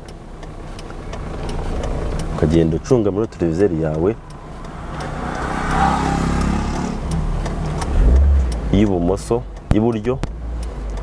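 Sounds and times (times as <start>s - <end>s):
deep rumble: 1.1s - 10.7s
small car passing by: 4.2s - 8.5s.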